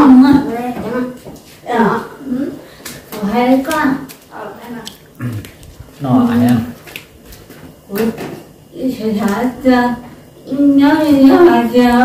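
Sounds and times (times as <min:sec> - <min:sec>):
people talking: 0:00.0 - 0:02.6, 0:03.2 - 0:06.8, 0:07.9 - 0:12.0.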